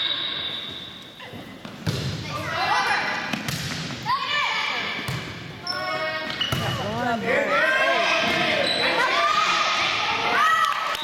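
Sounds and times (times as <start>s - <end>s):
volleyball smacks: 3.3s - 3.9s
people calling out and shouting: 4.0s - 11.0s.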